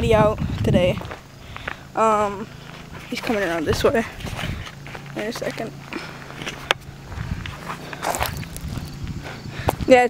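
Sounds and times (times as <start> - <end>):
faint lawn mower engine drone: 0.0 - 10.0
footsteps on dirt: 0.0 - 10.0.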